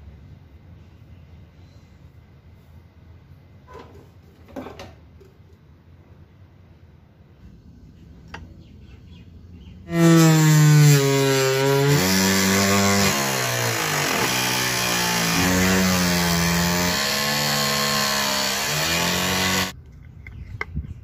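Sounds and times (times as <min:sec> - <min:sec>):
table saw cutting plastic: 0:09.9 - 0:19.7.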